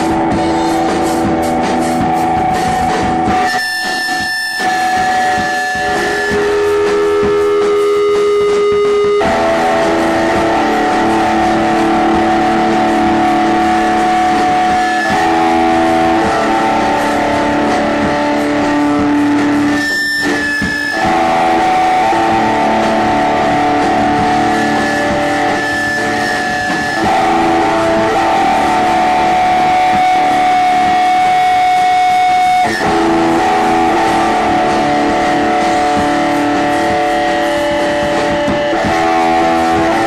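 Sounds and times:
live rock music: 0.0 - 40.0
sustained electric guitar chords: 0.0 - 40.0.

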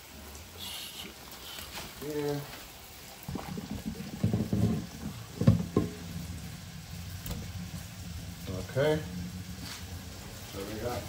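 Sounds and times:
hot water pouring into a sink: 0.0 - 11.0.

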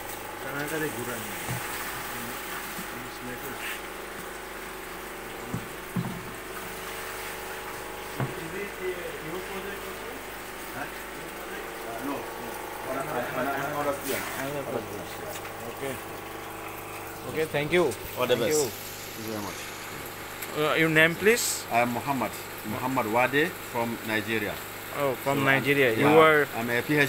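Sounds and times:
pump humming: 0.0 - 27.0
water running: 0.0 - 27.0.

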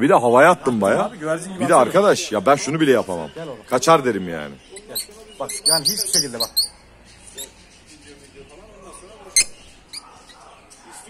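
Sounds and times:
lovebird chirping: 1.7 - 11.0.

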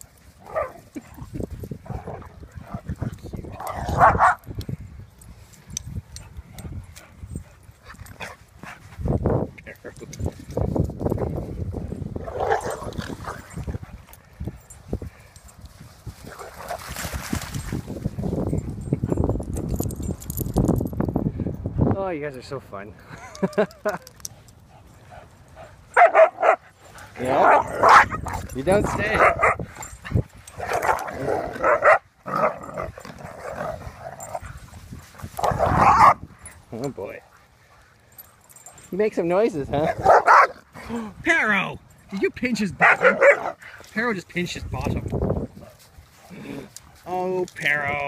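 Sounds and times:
dog barks: 3.6 - 4.4, 25.9 - 26.6, 27.4 - 29.6, 31.6 - 32.6, 35.4 - 36.2, 39.9 - 40.6, 42.8 - 43.6
small dogs scuffling: 15.6 - 20.6.

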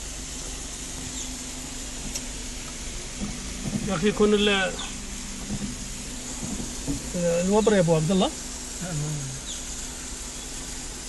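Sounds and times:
car engine idling in cabin: 0.0 - 11.0.

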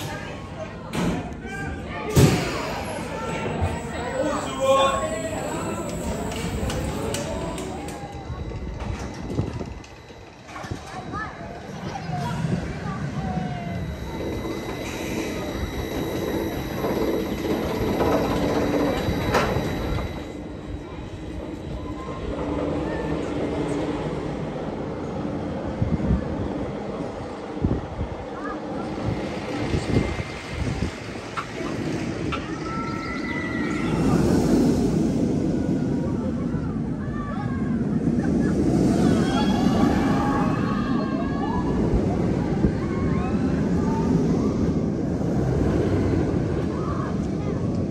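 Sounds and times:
people's voices: 0.0 - 47.9
roller coaster rumbling on track: 0.0 - 47.9.

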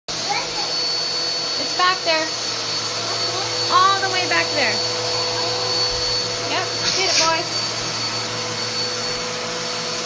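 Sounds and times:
vacuum cleaner running: 0.1 - 10.0.

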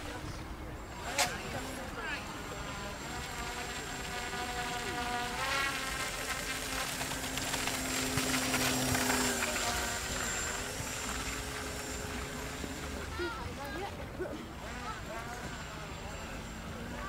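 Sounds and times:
model boat motor whining: 0.0 - 17.0.

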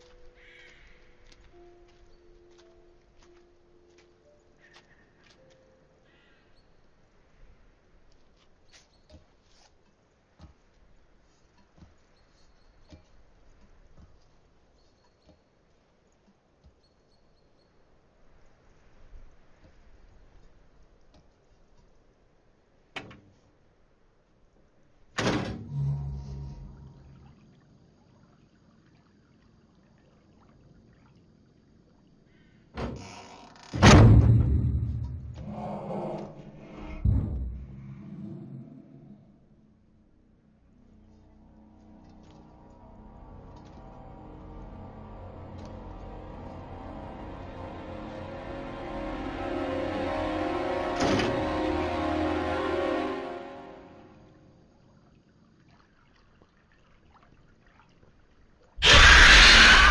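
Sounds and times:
low steady hum: 9.9 - 33.1, 33.8 - 58.7
tense horror music: 25.2 - 27.5, 33.8 - 54.7, 58.8 - 59.9
low rumble: 25.6 - 27.8, 33.8 - 52.8
deep thud: 33.8 - 35.5, 37.0 - 37.9.

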